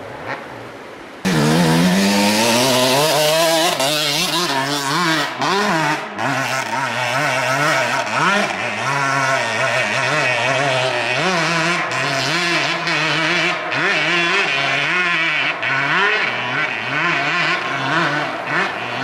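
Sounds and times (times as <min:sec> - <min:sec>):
dirt bike engines revving: 0:00.0 - 0:19.0.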